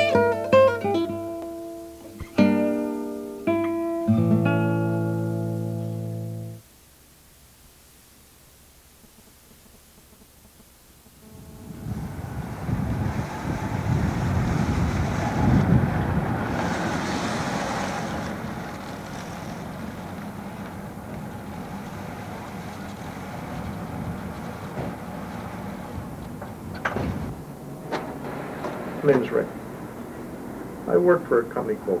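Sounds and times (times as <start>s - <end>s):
car engine running: 11.2s - 30.9s.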